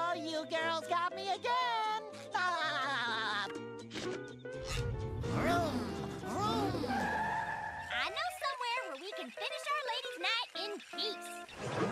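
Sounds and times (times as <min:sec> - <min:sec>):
remix of chopped cartoon voices: 0:00.0 - 0:03.7, 0:04.8 - 0:07.1.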